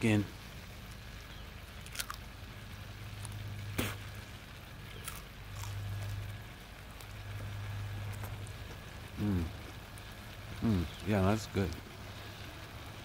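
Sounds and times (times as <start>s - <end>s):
low steady hum: 0.0s - 13.0s
radish crunching: 1.8s - 2.3s, 4.9s - 7.3s
moist chewing: 1.8s - 2.4s, 3.1s - 4.2s, 4.9s - 10.1s.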